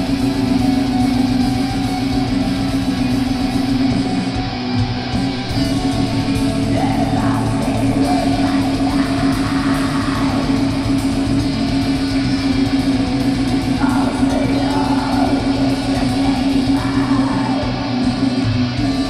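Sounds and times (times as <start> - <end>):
bass guitar: 0.0 - 19.0
distorted electric guitars: 0.0 - 19.0
rapid drumming: 0.0 - 19.0
person singing: 6.2 - 11.2, 13.7 - 18.3.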